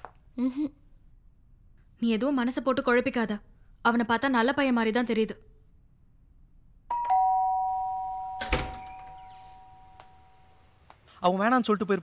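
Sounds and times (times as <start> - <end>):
two-note doorbell chime: 6.9 - 9.9.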